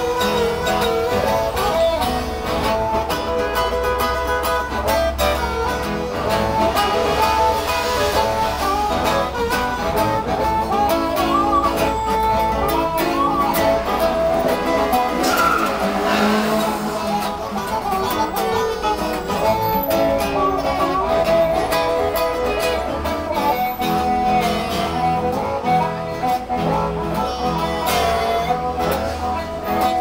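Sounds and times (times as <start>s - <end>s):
acoustic guitar blues shuffle: 0.0s - 30.0s
blues harmonica: 0.0s - 30.0s.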